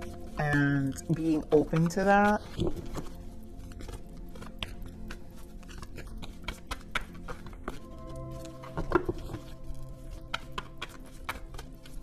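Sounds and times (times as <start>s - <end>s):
cards being shuffled: 0.0s - 12.0s
soft background music: 0.0s - 12.0s.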